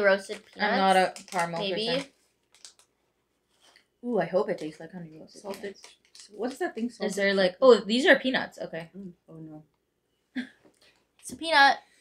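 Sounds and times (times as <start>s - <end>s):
plastic snack packet crinkling: 0.0s - 3.0s, 4.4s - 7.4s.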